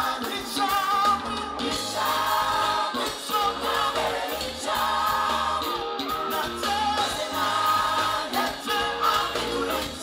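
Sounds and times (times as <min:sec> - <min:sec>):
backing singers: 0:00.0 - 0:10.0
bass guitar: 0:00.0 - 0:10.0
drums: 0:00.0 - 0:10.0
keyboards: 0:00.0 - 0:10.0
man singing lead: 0:00.0 - 0:10.0.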